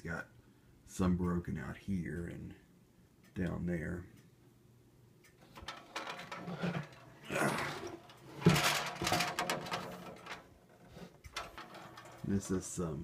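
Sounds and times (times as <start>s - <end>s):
clattering and rubbing: 5.4s - 12.8s
plastic fan rustling and scraping: 5.4s - 13.0s.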